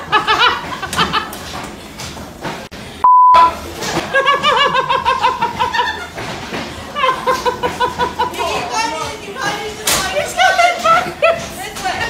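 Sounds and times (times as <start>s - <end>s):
people laughing: 0.0s - 1.6s, 3.7s - 12.0s
censor bleep: 3.0s - 3.6s.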